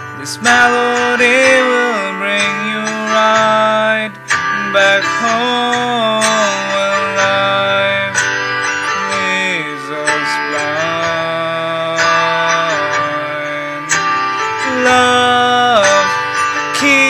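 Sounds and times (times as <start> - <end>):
guitar music with sliding notes: 0.0 - 17.0.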